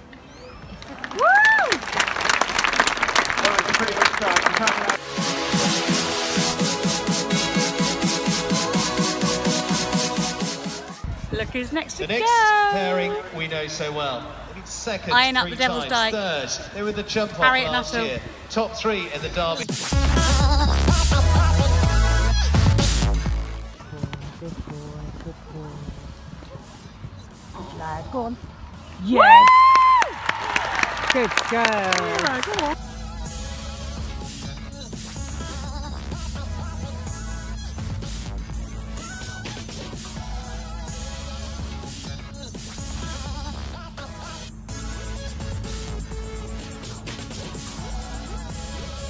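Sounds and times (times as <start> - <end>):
crowd applauding: 0.7 - 5.3, 29.1 - 32.8
person whooping: 1.1 - 1.8, 29.0 - 31.2, 31.9 - 32.8
electronic dance music: 3.1 - 11.0, 19.0 - 23.8, 30.9 - 49.0
low crowd murmur: 8.2 - 15.0, 23.6 - 29.4
distant public-address speech: 23.8 - 29.2, 30.8 - 32.8.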